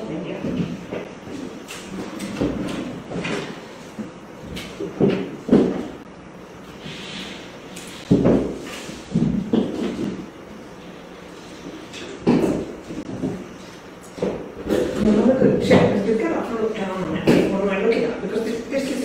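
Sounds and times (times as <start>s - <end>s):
objects knocking and clunking: 0.3s - 6.1s, 7.9s - 10.4s, 11.8s - 16.1s.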